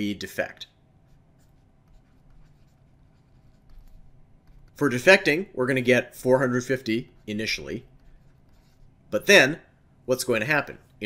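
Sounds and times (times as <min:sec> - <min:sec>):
stylus scratching tablet screen: 0:01.0 - 0:05.5, 0:06.2 - 0:09.3, 0:10.6 - 0:11.0.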